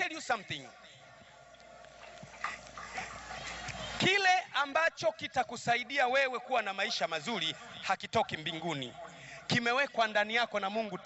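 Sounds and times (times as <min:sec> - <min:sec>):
faint voices: 0:00.0 - 0:04.6.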